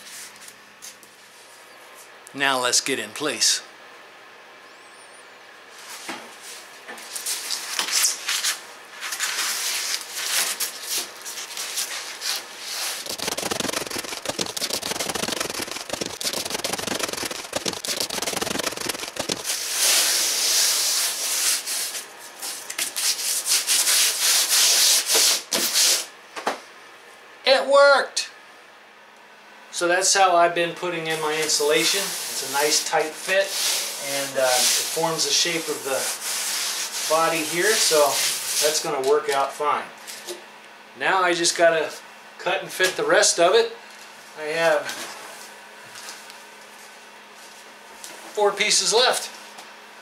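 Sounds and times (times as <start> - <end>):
hands crinkling foil insulation: 9.0 - 20.1.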